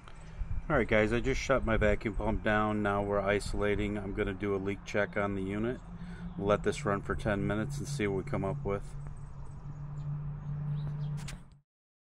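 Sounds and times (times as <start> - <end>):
low mechanical hum: 0.0 - 11.6.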